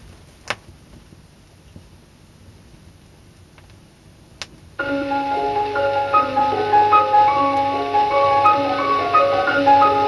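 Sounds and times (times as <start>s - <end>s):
vinyl clicks and crackles: 0.4s - 1.1s
recorded music held notes: 4.8s - 10.0s.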